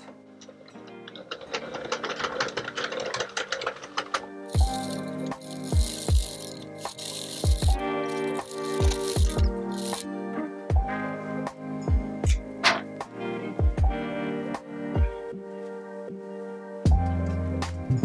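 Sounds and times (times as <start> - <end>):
knitting machine needles clattering: 0.0 - 10.1
background music with steady beat: 0.0 - 18.0.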